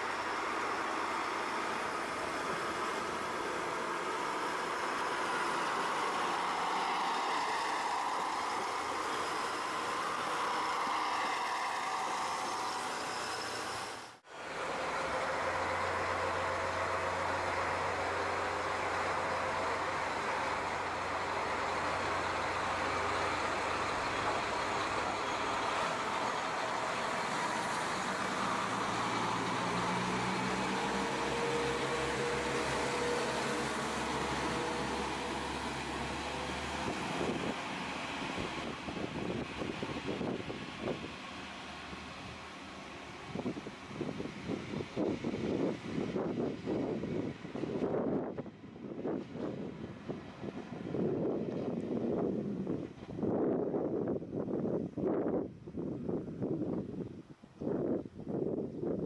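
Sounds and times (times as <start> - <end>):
diesel train engine running: 0.0 - 57.2
wind on microphone: 43.2 - 59.0.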